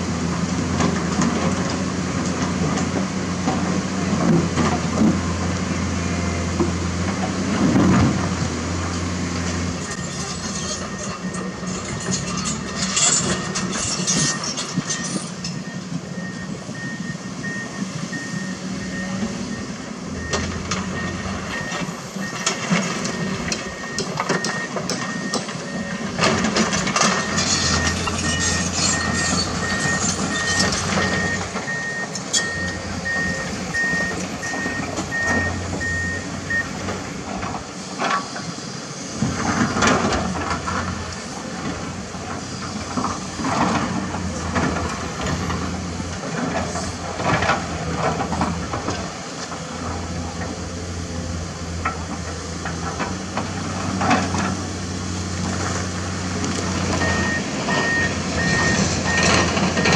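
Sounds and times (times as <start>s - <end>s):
excavator diesel engines droning: 0.0s - 59.9s
backup alarm beeping: 28.3s - 36.7s, 57.0s - 59.9s.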